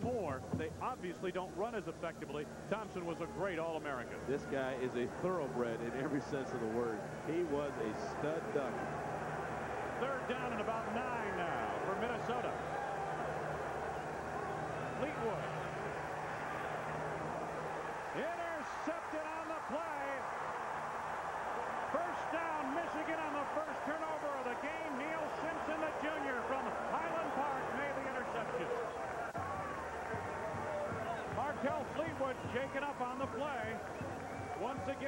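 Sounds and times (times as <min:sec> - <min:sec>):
stadium crowd cheering and yelling: 0:00.8 - 0:35.0.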